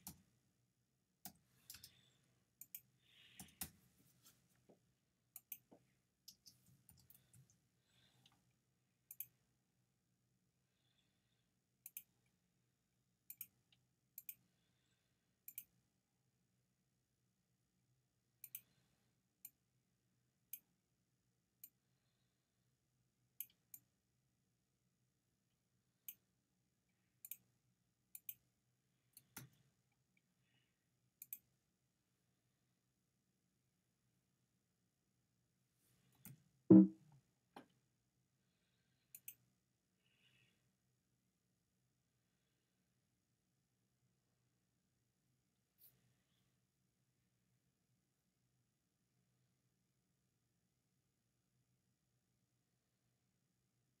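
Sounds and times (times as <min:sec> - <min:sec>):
mouse button clicks: 0:36.7 - 0:37.0.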